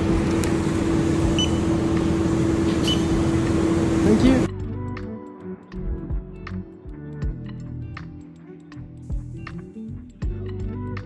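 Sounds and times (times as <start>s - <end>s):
buses idling: 0.0s - 4.5s
short high beeps: 1.4s - 1.7s.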